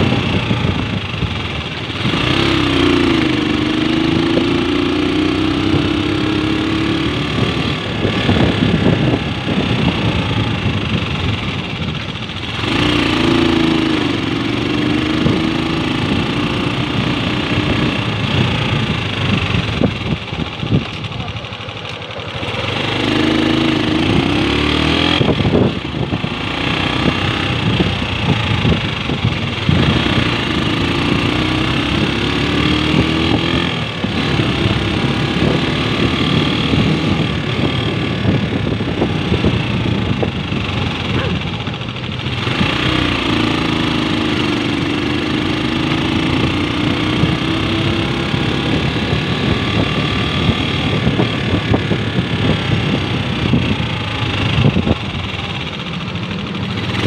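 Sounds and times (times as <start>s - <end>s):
motorcycle engine revving: 0.0s - 57.0s
wind and road noise: 0.0s - 57.0s.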